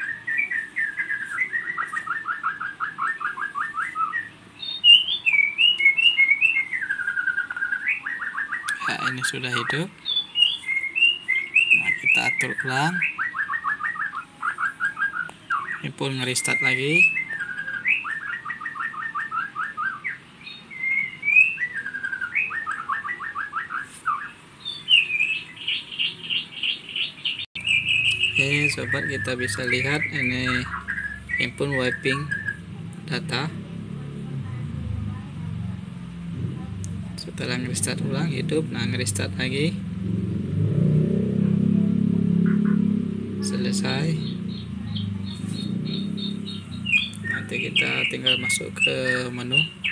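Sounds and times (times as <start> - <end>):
bird chirping: 0.0 - 49.9.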